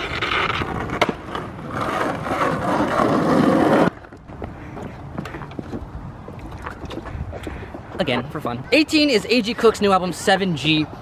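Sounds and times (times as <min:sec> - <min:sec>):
rough rolling scrape: 0:00.0 - 0:04.2.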